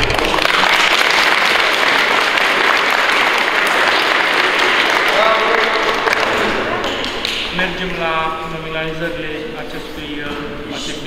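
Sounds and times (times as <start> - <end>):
voice rising over applause: 0.0 - 7.4
audience clapping: 0.0 - 8.5.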